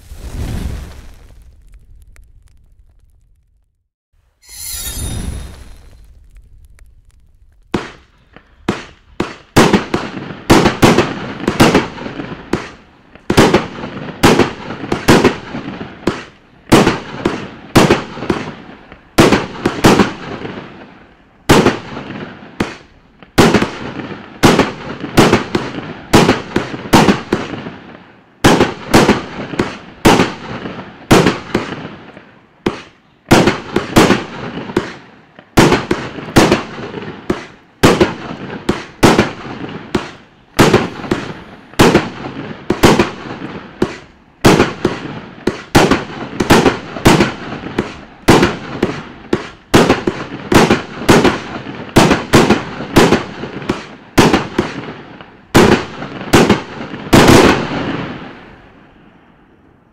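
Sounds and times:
firework shots bursting: 4.4 - 18.6, 28.4 - 31.9, 32.6 - 35.0, 35.6 - 54.9, 55.6 - 58.5.

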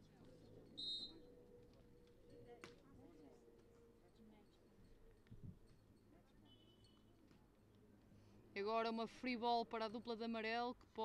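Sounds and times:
referee's whistle: 0.8 - 1.3.

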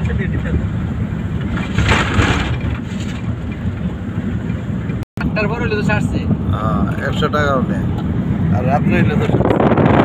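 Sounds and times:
engine and tyres rumbling: 0.0 - 10.0.

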